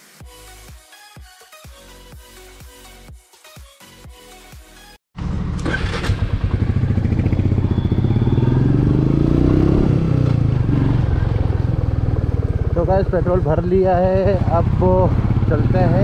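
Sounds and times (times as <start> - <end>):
music: 0.0 - 5.0
motorcycle engine revving: 5.2 - 16.0.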